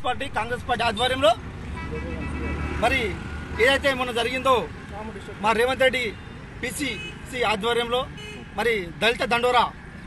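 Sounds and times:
road traffic rumble: 0.0s - 10.0s
vehicle passing: 1.3s - 5.5s.

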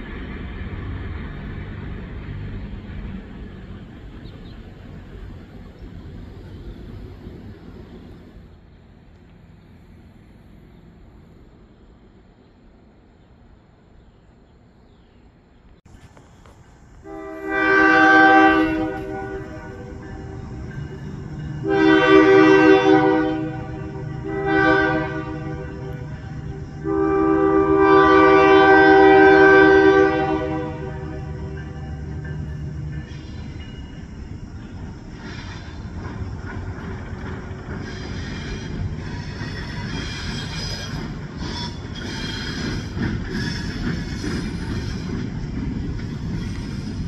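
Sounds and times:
wheels rumbling on rails: 0.0s - 47.0s
locomotive engine running: 15.9s - 47.0s
locomotive horn blasts: 17.0s - 32.2s.

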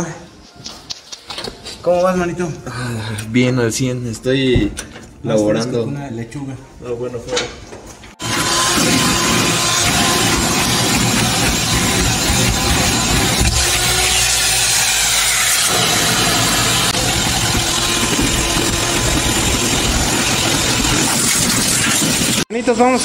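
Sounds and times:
vacuum cleaner running: 8.2s - 22.5s.

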